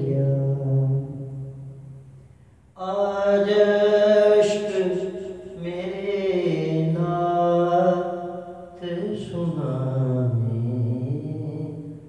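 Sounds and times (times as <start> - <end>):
man singing long low note: 0.0 - 1.8, 2.8 - 12.0.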